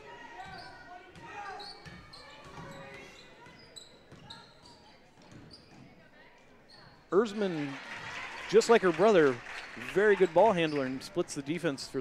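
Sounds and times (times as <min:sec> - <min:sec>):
faint crowd chatter: 0:00.0 - 0:12.0
sneaker squeaks: 0:00.3 - 0:07.2.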